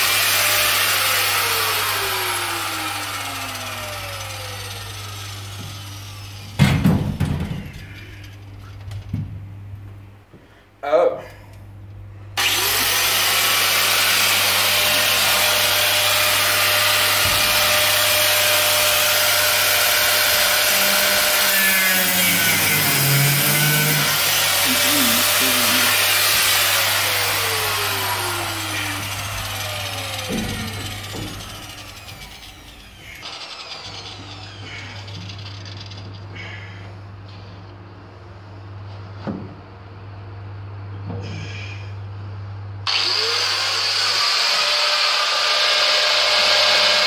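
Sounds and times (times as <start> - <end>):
angle grinder grinding: 0.0 - 6.6, 12.4 - 36.6, 42.9 - 47.0.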